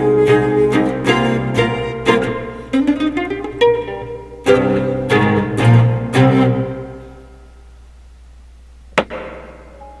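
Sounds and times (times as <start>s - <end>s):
strings ringing: 0.0s - 7.6s, 9.1s - 10.0s
sharp click: 9.0s - 9.6s.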